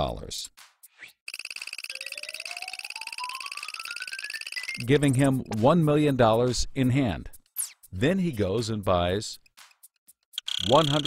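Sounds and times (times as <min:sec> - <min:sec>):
rapid electronic ticking: 0:01.3 - 0:05.6, 0:10.3 - 0:11.0.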